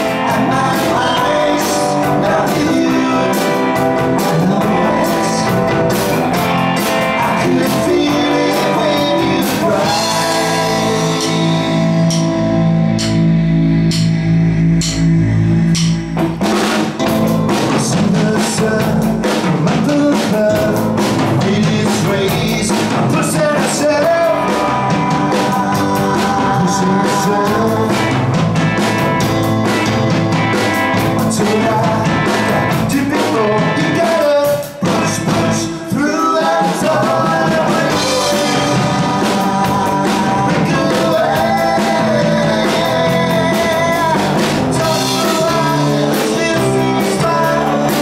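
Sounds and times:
male lead vocals: 0.0 - 13.0, 17.0 - 48.0
rock band playing live: 0.0 - 48.0.

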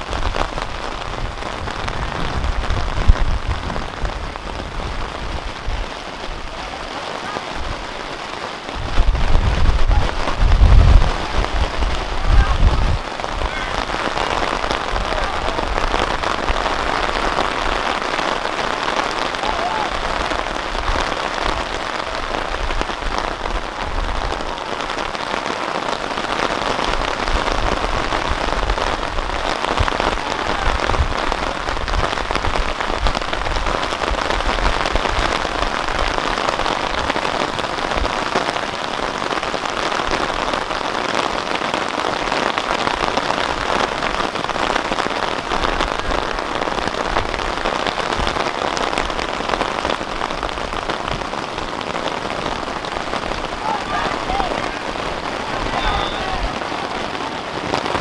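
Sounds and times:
steady rain falling: 0.0 - 58.0.

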